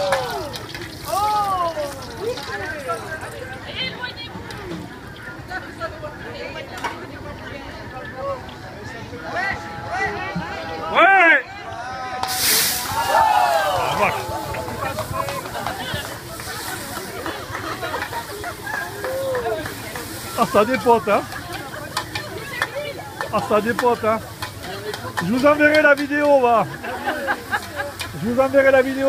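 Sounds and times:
wok sizzling: 0.0 - 3.4, 12.2 - 29.0
people's voices: 0.0 - 29.0.

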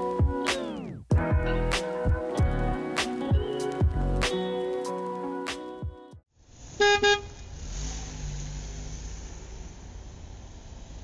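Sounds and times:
traffic rumble: 6.4 - 11.0
vehicle horn toots: 6.8 - 7.4.

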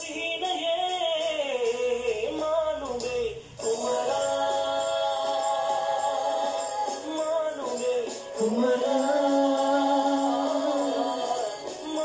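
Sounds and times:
pop song with singing: 0.0 - 12.0.

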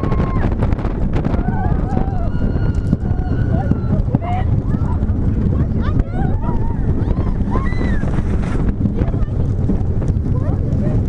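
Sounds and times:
riders screaming and whooping: 0.0 - 8.7
roller coaster rumbling on track: 0.0 - 11.0
wind buffeting microphone: 0.0 - 11.0.

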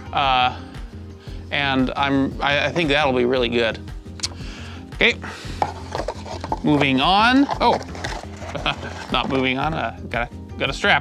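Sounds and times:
background music with low beat: 0.0 - 11.0
cardboard rustle with small taps: 5.6 - 9.5.

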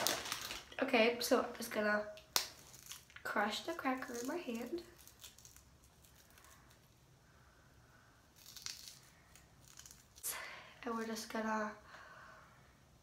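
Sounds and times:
crackers crackling and crunching: 0.0 - 0.8, 2.2 - 7.2, 8.2 - 10.4.

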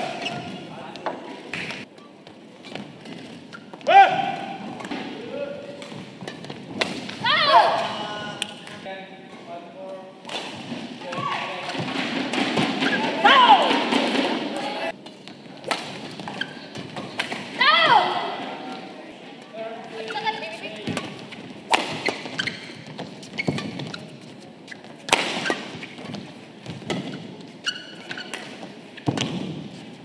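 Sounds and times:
players shouting: 3.8 - 4.6, 7.2 - 8.4, 13.0 - 14.9, 17.6 - 18.7.

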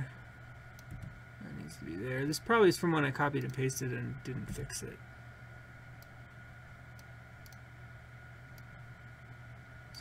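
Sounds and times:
low hum and hiss: 0.0 - 10.0
keyboard and mouse clicks: 0.7 - 1.2, 7.0 - 7.6.

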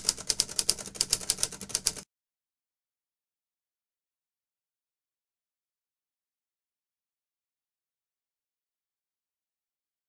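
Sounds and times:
fast sharp clicks: 0.0 - 2.0.

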